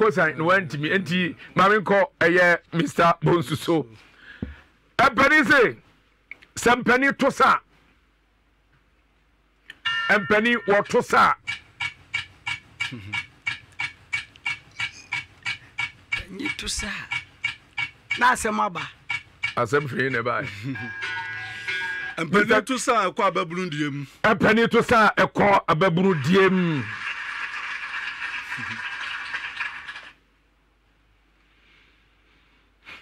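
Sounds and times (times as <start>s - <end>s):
timer ticking: 10.8s - 22.2s.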